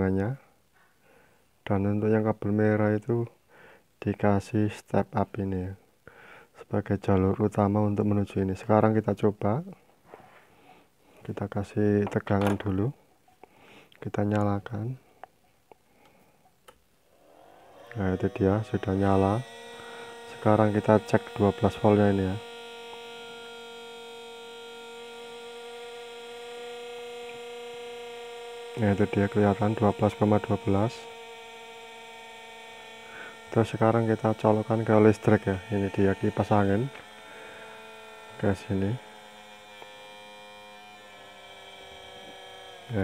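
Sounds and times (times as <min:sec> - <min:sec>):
power inverter humming: 0:16.7 - 0:43.0.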